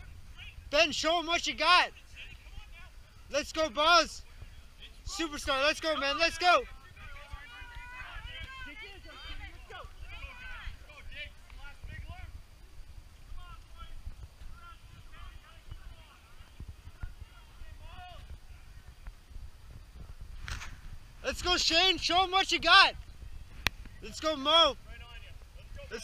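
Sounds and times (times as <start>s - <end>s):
distant spectators calling out: 0.0s - 20.0s, 21.2s - 26.0s
low microphone rumble: 6.7s - 22.1s.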